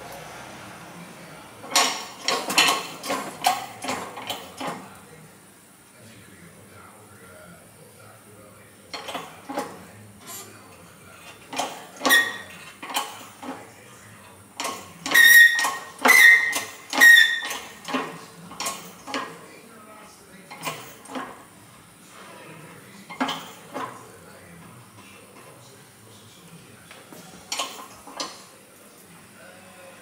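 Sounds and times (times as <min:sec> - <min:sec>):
metal-on-metal knocks and clinks: 0:01.7 - 0:04.8.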